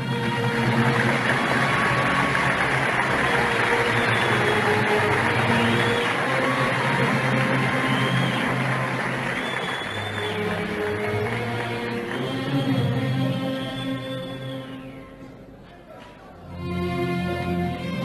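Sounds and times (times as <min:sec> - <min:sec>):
orchestral music with strings: 0:00.0 - 0:18.0.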